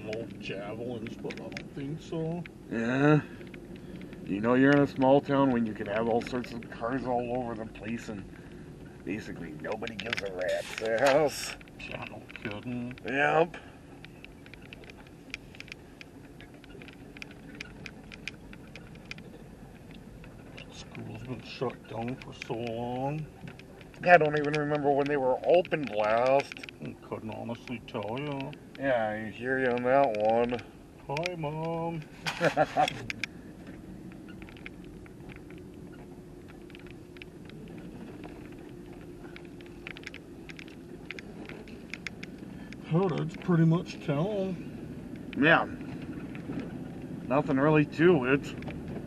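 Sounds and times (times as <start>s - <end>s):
car engine and road rumble: 0.0s - 49.0s
light clicks and ticks: 0.0s - 49.0s.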